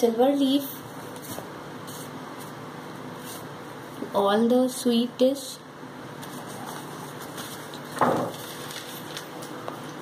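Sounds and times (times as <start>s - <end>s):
fan hiss: 0.0s - 10.0s
sheet rustling: 6.2s - 9.5s.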